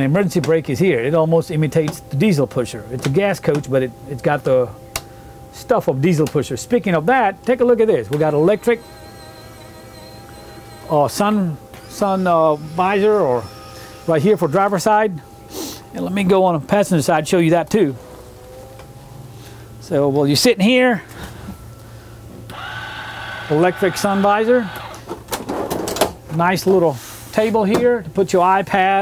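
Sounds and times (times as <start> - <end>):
motor high whine: 0.0 - 25.3
low steady hum: 0.0 - 29.0.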